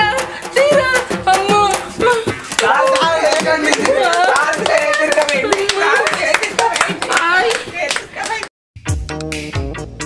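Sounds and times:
hand claps: 0:02.4 - 0:08.5.

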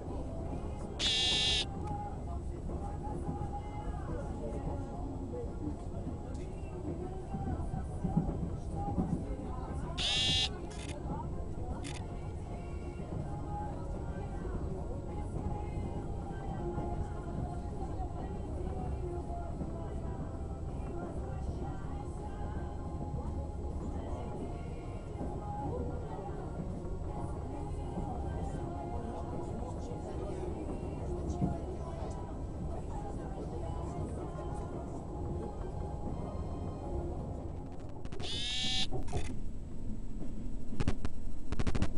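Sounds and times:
train rumble: 0:00.0 - 0:38.3
faint voices: 0:00.0 - 0:38.6
shrill buzzing tone: 0:01.0 - 0:01.6, 0:10.0 - 0:10.5
indistinct voices: 0:10.0 - 0:10.9.

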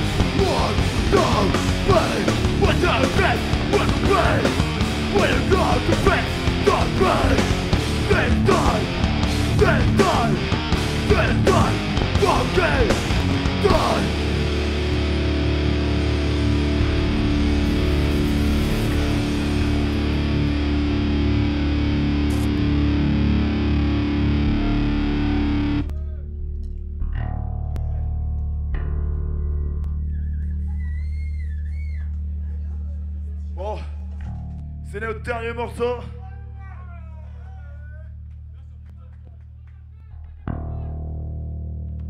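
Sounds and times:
people shouting: 0:00.0 - 0:14.4
heavy metal band playing: 0:00.0 - 0:25.9.

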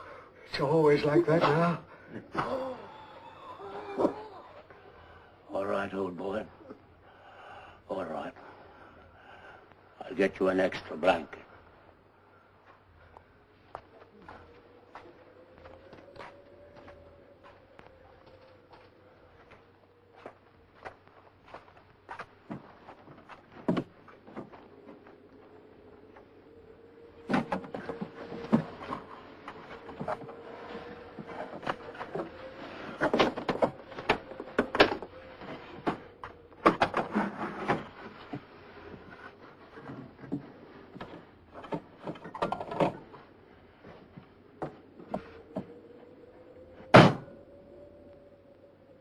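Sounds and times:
faint steady tone: 0:00.0 - 0:49.0.

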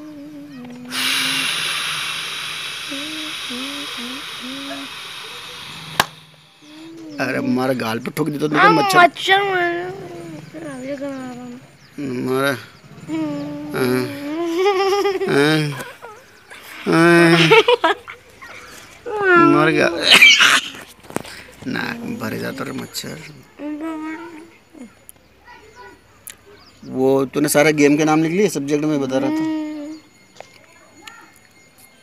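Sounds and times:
man humming faintly: 0:00.0 - 0:05.7, 0:09.8 - 0:17.6, 0:21.6 - 0:25.0
man making wavering vocal calls: 0:00.0 - 0:05.9, 0:08.5 - 0:09.2, 0:12.0 - 0:17.6, 0:19.1 - 0:20.5, 0:21.7 - 0:24.4
background hiss: 0:00.0 - 0:30.5.

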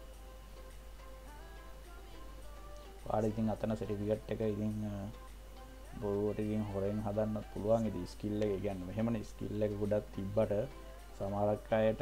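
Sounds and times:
light ticking beat: 0:00.0 - 0:12.0.

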